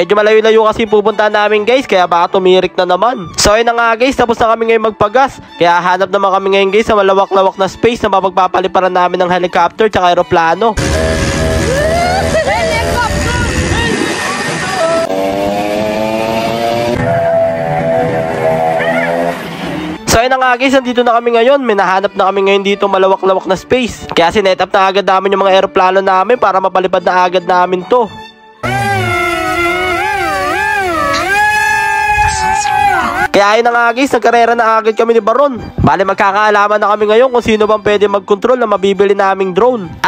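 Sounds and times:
steady droning tone: 10.8 - 15.1, 28.6 - 31.4
wailing voice-like note: 10.8 - 15.2, 16.8 - 19.4, 28.6 - 33.3
vehicle engine: 10.8 - 20.0, 28.6 - 31.4
men whooping and shouting: 10.9 - 15.1, 16.8 - 19.4, 28.6 - 33.4.

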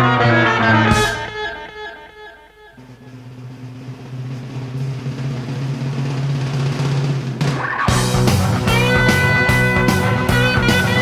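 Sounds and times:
ringing guitar chord: 0.0 - 3.2.

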